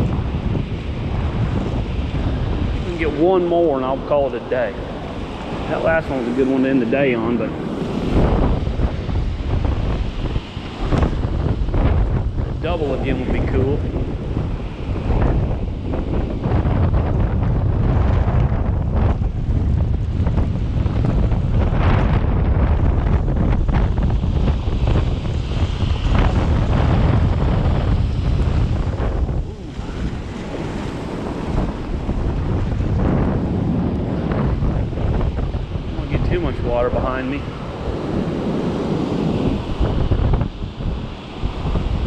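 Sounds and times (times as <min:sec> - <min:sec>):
ocean surf breaking: 0:00.0 - 0:42.0
wind buffeting microphone: 0:00.0 - 0:42.0.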